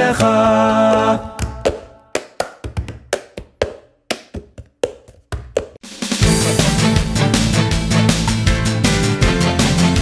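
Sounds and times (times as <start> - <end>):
hand claps: 1.4 - 5.8.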